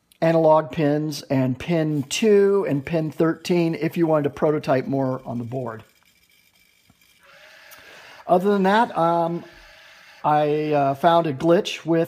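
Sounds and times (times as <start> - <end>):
small electric motor whirring: 5.1 - 10.8.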